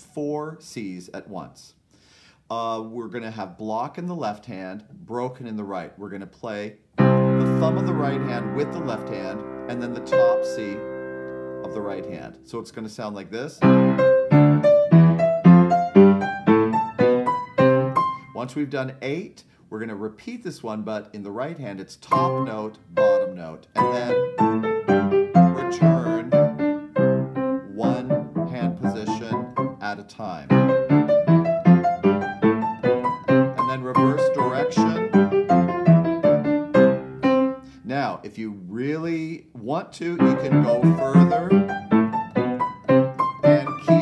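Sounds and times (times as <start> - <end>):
piano octave exercise: 7.0 - 12.6, 13.6 - 18.5, 22.1 - 38.2, 40.0 - 44.0.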